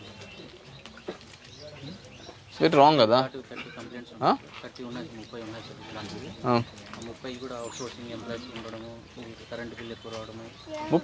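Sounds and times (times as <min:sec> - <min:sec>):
faint crowd murmur: 0:00.0 - 0:11.0
bird calling: 0:05.0 - 0:11.0.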